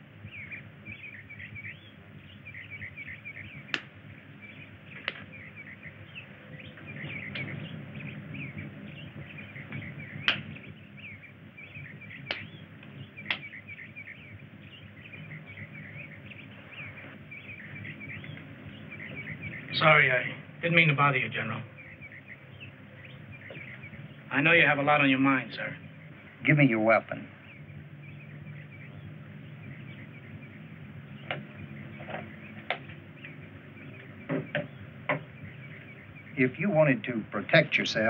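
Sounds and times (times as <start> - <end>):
birds chirping: 0.0 - 38.0
sharp clicks: 3.7 - 4.0, 5.0 - 5.3, 9.7 - 10.5, 12.2 - 13.6.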